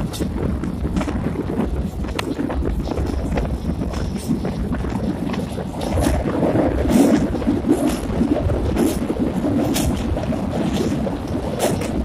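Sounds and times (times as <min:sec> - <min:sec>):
train rumbling over bridge: 0:00.0 - 0:12.0
wind buffeting microphone: 0:00.0 - 0:12.0.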